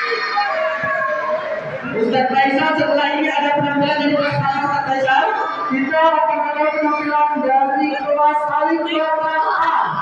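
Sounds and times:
voice chanting over loudspeaker: 0.0s - 10.0s.

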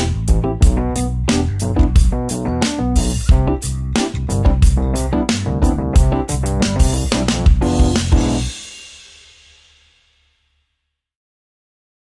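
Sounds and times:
low bass note: 0.0s - 8.5s.

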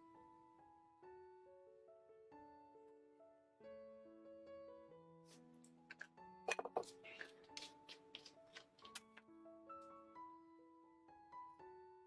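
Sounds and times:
background piano music: 0.0s - 12.0s.

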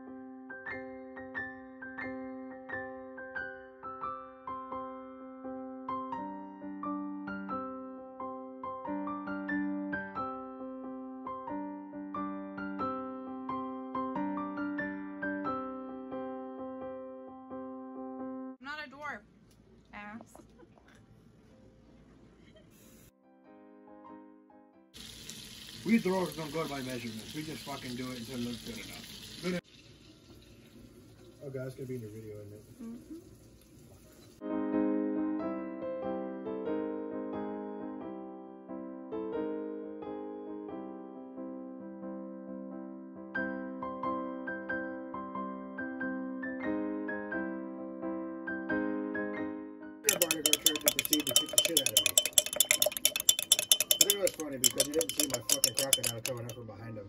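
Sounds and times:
butter sizzling in a frying pan: 25.0s - 34.4s
metal spoon clinking glass jar: 50.1s - 56.6s
person speaking: 50.1s - 56.6s.

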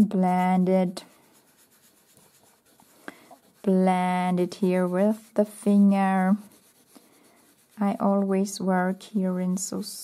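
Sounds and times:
fingertips rubbing paper: 0.0s - 8.4s.

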